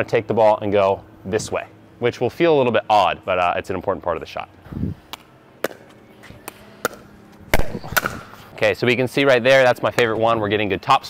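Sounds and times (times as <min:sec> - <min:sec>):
paddles hitting plastic ball: 0:05.1 - 0:08.3.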